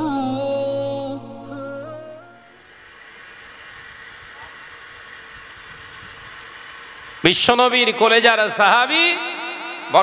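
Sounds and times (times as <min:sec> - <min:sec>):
sound system hiss and hum: 0:00.0 - 0:10.0.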